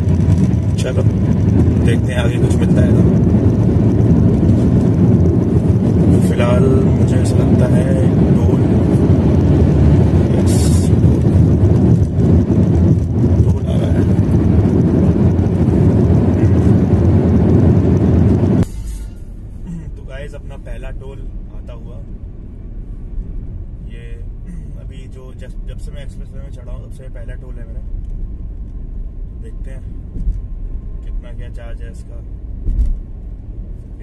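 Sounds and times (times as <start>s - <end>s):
road and engine rumble in car: 0.0s - 34.0s.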